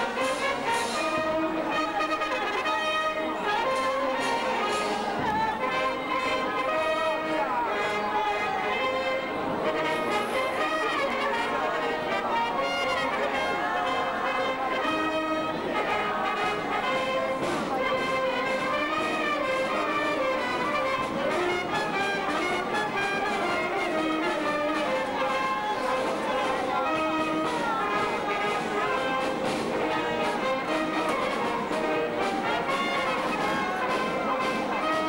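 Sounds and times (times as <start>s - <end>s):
brass band playing: 0.0s - 35.0s.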